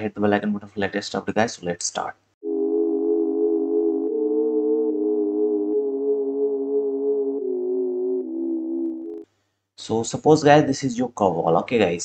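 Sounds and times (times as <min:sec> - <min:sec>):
sustained synthesizer chords: 0:02.4 - 0:09.3.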